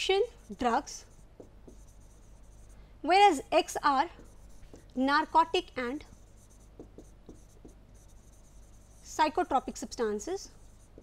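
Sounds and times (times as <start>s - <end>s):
stylus scratching and tapping tablet: 0.0s - 11.0s.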